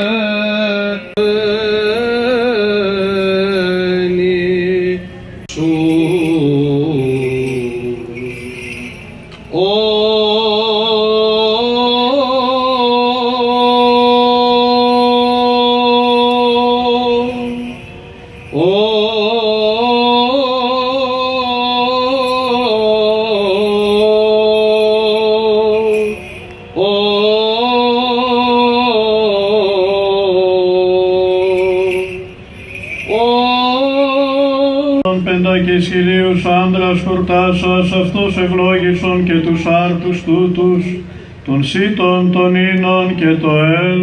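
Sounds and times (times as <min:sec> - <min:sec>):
censer bells jingling: 0:01.1 - 0:04.5, 0:05.5 - 0:09.6, 0:12.3 - 0:40.5
man chanting sustained notes: 0:09.6 - 0:44.0.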